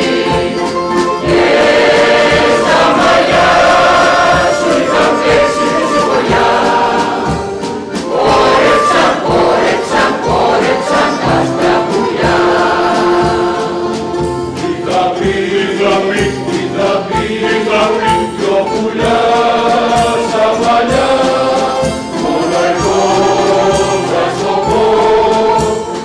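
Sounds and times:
mixed choir singing: 0:00.0 - 0:26.0.

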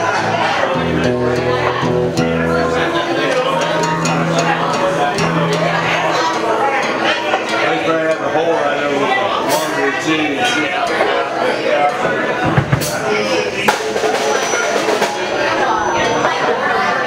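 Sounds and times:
acoustic guitar strumming: 0:00.0 - 0:08.6
people talking: 0:00.0 - 0:17.0.

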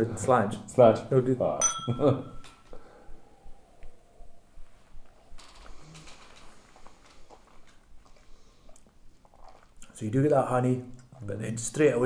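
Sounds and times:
faint sipping: 0:05.6 - 0:10.0.

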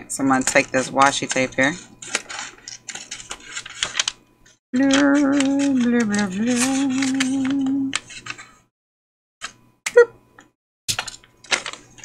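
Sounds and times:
paper crinkling rustles: 0:02.0 - 0:04.2.

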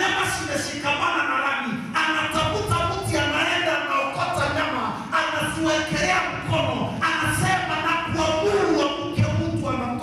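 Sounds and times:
man speaking through loudspeakers: 0:00.0 - 0:10.0.

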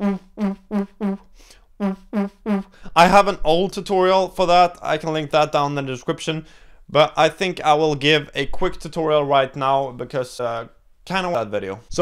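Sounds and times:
beatboxed lip synth tones: 0:00.0 - 0:02.8.

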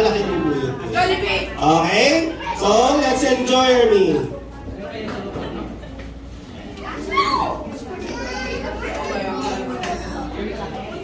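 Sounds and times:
children chattering: 0:00.0 - 0:11.0
child shouting: 0:06.9 - 0:09.1.

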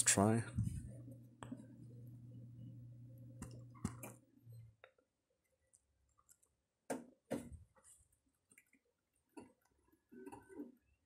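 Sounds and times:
low steady hum: 0:00.0 - 0:04.9.

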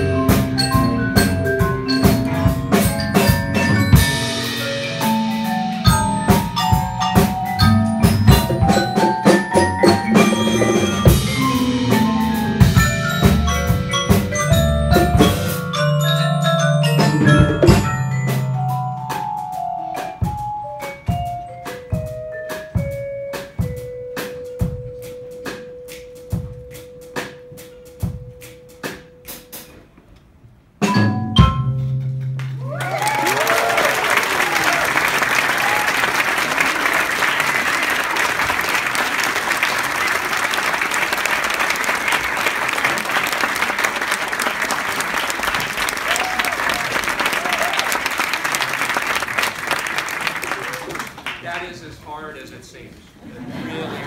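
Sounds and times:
double bass: 0:00.0 - 0:25.7, 0:30.8 - 0:32.8
mallet percussion ensemble: 0:00.0 - 0:29.7, 0:30.8 - 0:37.0
audience whooping: 0:32.6 - 0:51.3
audience applause: 0:32.6 - 0:51.6.

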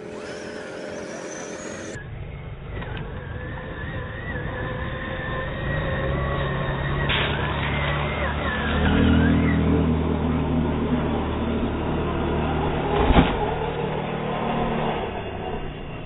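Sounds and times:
electric motor whine: 0:00.0 - 0:16.0
low hum: 0:00.0 - 0:16.0
tires over loose gravel: 0:00.0 - 0:16.0.

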